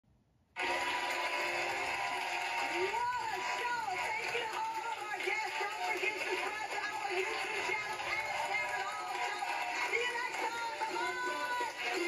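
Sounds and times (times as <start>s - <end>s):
studio audience applause: 0.6s - 12.0s
talk show theme music: 0.6s - 12.0s.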